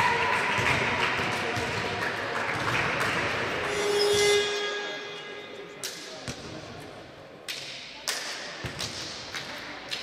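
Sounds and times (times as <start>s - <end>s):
echoing sports hall noise: 0.0s - 10.0s.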